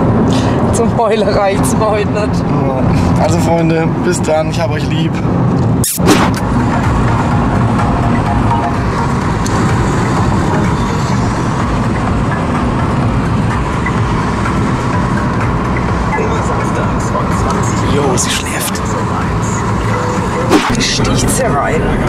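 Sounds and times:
car cabin road and engine noise: 0.0s - 22.0s.

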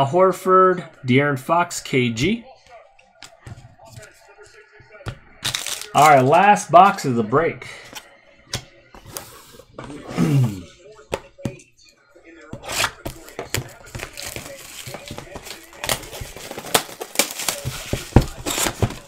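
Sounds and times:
plastic wrap tearing and crinkling: 5.4s - 6.3s, 12.6s - 19.0s.

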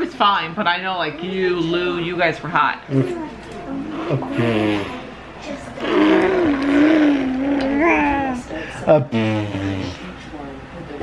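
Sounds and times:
baby blowing a buzzing raspberry: 3.9s - 5.1s, 5.8s - 8.4s, 9.1s - 10.0s.

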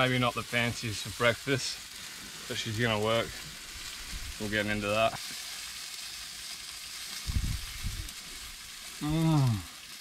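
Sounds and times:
soft hiss: 0.0s - 10.0s.

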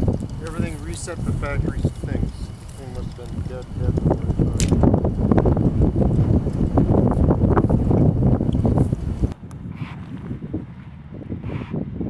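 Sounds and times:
gusty wind buffeting microphone: 0.0s - 12.0s.

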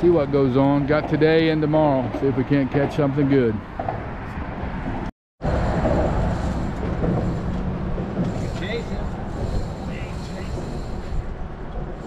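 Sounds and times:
traffic on bridge overhead: 0.0s - 12.0s
wind on microphone: 3.6s - 12.0s.

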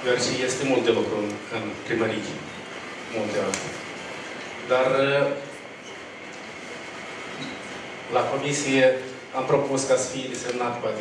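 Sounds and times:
hall background noise: 0.0s - 11.0s.

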